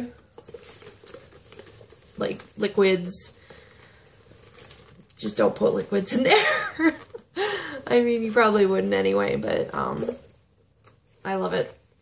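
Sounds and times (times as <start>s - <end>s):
bag being handled: 0.0s - 5.9s.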